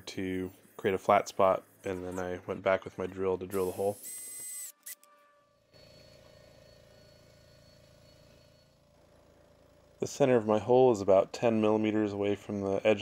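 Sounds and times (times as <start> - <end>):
rotary tool whining on metal: 3.6 - 10.4.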